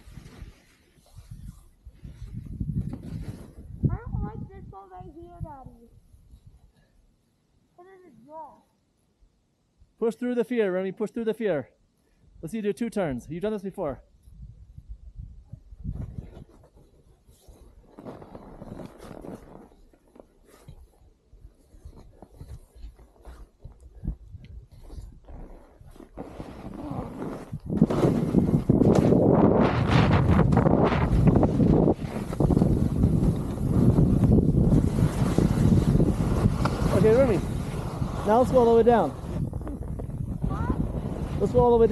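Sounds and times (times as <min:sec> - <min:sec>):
wind rushing over microphone: 0:01.1 - 0:06.6, 0:26.6 - 0:41.9
skis scraping on snow: 0:24.8 - 0:39.6, 0:40.5 - 0:41.9.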